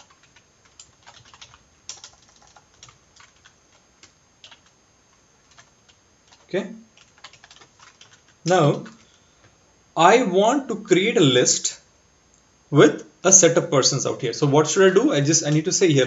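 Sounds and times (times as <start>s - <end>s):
keyboard typing: 0.0s - 4.8s, 5.5s - 9.2s.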